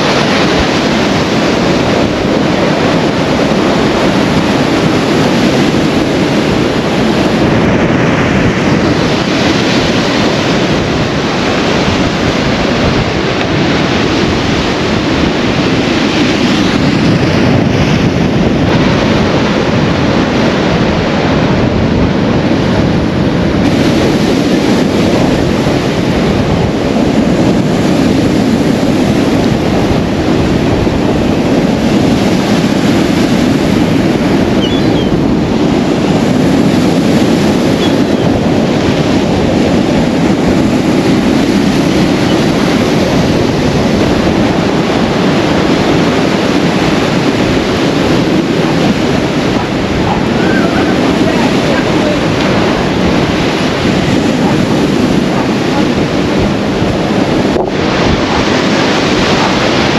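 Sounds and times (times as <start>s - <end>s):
sea surf breaking against wall: 0.0s - 59.9s.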